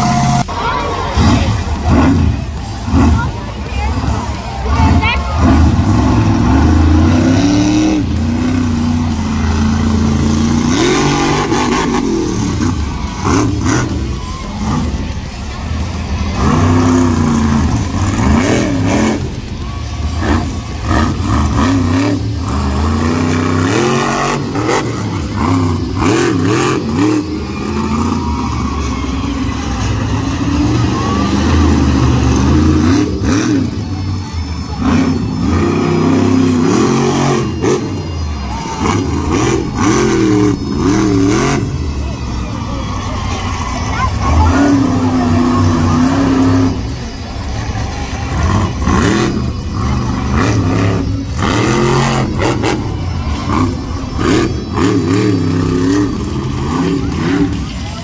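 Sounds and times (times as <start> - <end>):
monster truck engine revving: 0.0 - 58.0.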